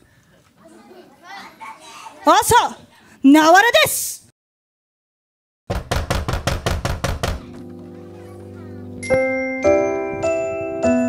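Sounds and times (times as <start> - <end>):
rapid sharp knocking hits: 5.7 - 7.6.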